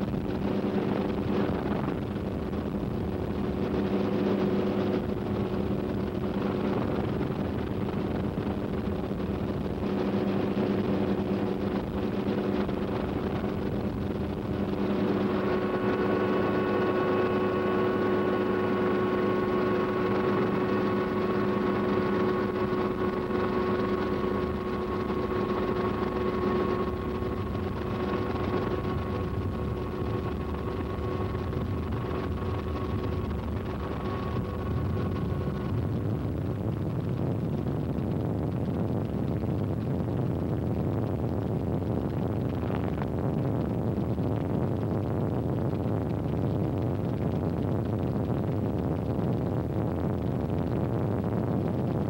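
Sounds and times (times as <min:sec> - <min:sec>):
helicopter engine and rotor drone: 0:00.0 - 0:35.8
high-pitched whine: 0:00.0 - 0:52.0.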